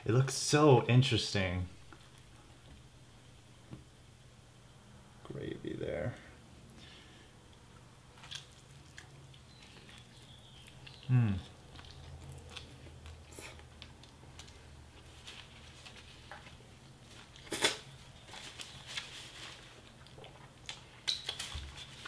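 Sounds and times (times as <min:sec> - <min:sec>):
person chewing fried chicken: 0:07.5 - 0:22.0.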